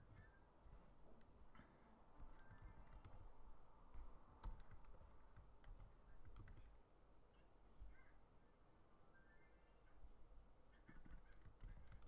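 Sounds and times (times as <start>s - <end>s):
computer keys typing clicks: 0.0s - 0.4s, 2.2s - 3.3s, 4.0s - 6.8s, 10.9s - 12.0s.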